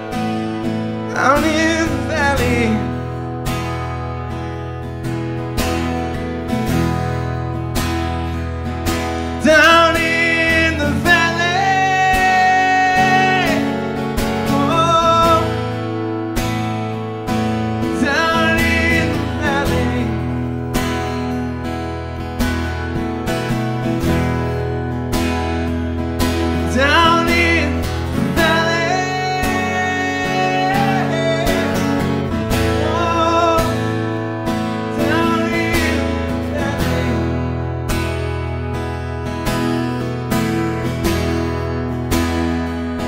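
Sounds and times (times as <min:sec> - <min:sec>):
strummed acoustic guitar: 0:00.0 - 0:43.0
man singing wordless vocals: 0:01.0 - 0:03.0, 0:09.3 - 0:15.6, 0:17.8 - 0:20.3, 0:26.6 - 0:37.6.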